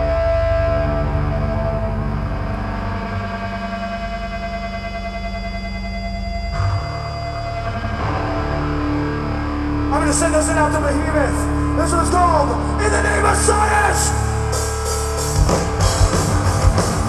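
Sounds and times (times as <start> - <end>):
low droning note: 0.0 - 10.0
distorted electric guitar and bass: 0.0 - 17.0.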